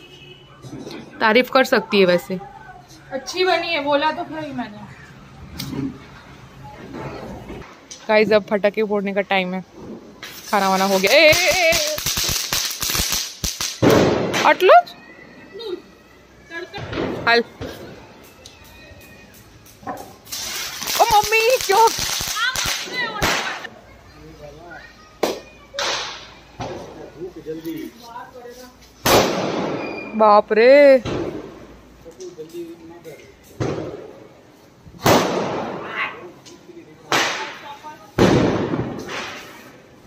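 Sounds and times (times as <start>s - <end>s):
firecracker fizzing: 9.8s - 14.9s, 16.8s - 23.7s, 25.2s - 27.0s, 28.9s - 30.2s, 33.4s - 36.0s, 37.0s - 40.0s.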